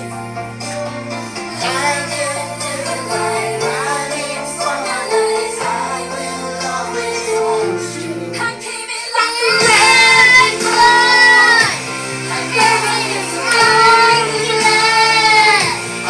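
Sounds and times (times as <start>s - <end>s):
music backing track: 0.0s - 16.0s
child singing karaoke: 1.5s - 16.0s.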